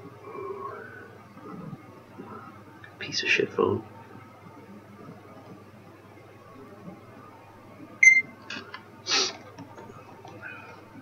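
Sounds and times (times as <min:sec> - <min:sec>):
smartphone beep: 0:08.0 - 0:08.3.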